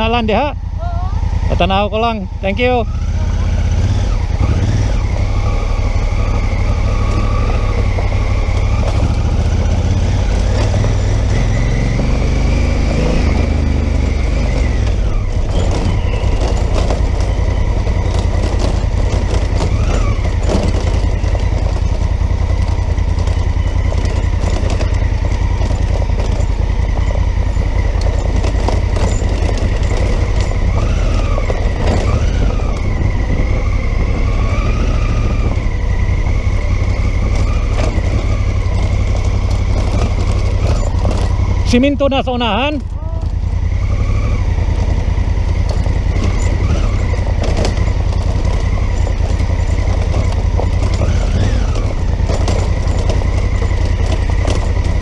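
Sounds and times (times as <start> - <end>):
motorcycle engine running: 0.0 - 55.0
wind and road noise rumble: 0.0 - 55.0.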